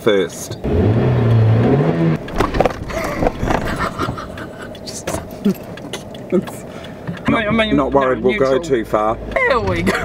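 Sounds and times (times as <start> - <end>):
car cabin noise: 0.0 - 10.0
people laughing: 2.9 - 6.5.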